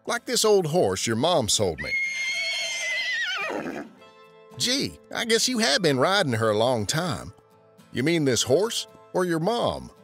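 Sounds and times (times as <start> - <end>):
horse whinnying: 1.8 - 4.0.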